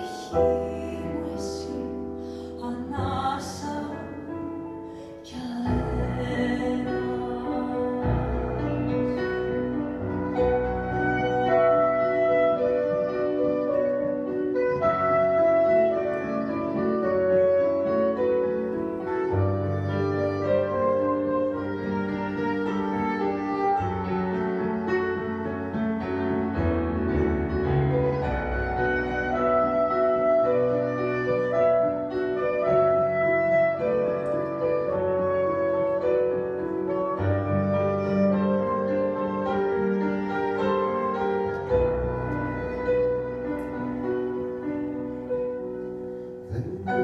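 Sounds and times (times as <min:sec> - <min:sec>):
piano chords: 0:00.0 - 0:47.0
saxophone melody: 0:08.3 - 0:47.0.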